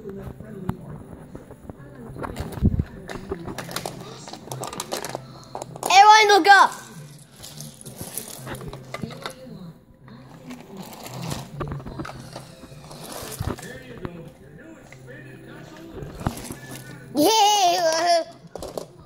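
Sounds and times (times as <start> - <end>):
muffled voices: 0.0 - 19.0
loud high-pitched voice: 5.9 - 6.8.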